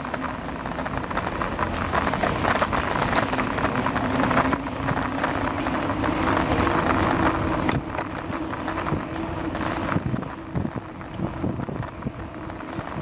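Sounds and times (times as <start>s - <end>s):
bicycle frame rattling: 0.0s - 13.0s
bicycle tyres rumbling on pavement: 0.0s - 13.0s
wind on microphone: 0.0s - 13.0s.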